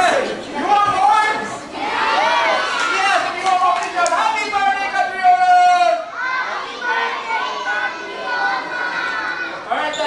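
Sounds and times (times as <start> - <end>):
children talking and calling out: 0.5 - 10.0.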